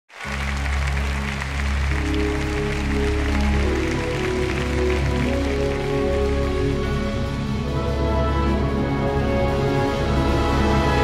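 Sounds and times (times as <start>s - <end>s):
audience applause: 0.1s - 7.4s
string orchestra chords: 0.2s - 11.0s.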